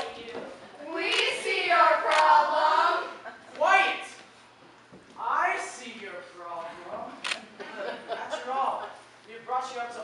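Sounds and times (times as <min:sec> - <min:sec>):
children speaking: 0:00.8 - 0:04.2.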